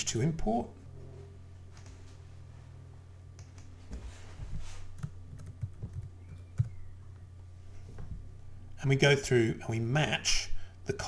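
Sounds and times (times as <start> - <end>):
computer keyboard typing: 5.0 - 6.8.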